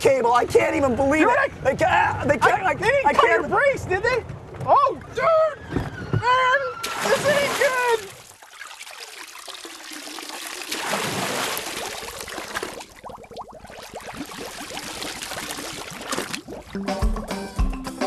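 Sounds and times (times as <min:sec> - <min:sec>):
churning water underwater: 0:06.8 - 0:16.8
splash into water: 0:06.8 - 0:16.8.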